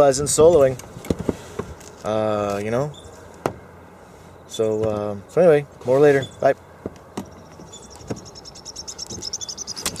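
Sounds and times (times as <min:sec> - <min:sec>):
insect chirping: 0:07.2 - 0:10.0.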